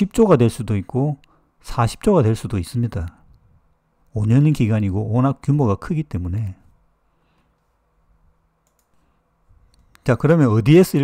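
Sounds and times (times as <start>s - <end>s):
faint clicks: 8.6s - 9.0s.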